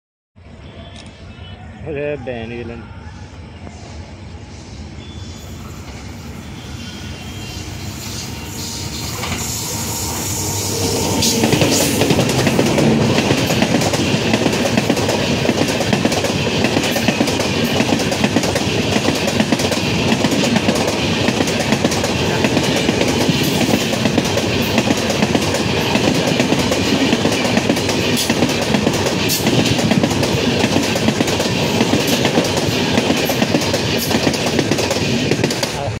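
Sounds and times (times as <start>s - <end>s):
train wheels rumbling on rails: 5.4s - 36.0s
clickety-clack over rail joints: 11.3s - 36.0s.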